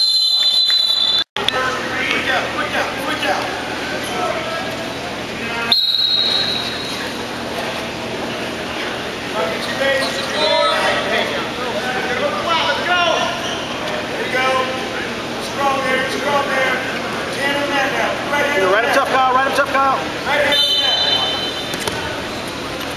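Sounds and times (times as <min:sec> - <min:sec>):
people calling out in gym: 0:09.7 - 0:11.5, 0:19.7 - 0:21.7.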